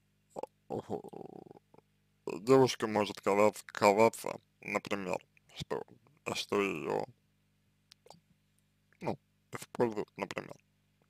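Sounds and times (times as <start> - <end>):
person gurgling throat noise: 0.4 - 1.8.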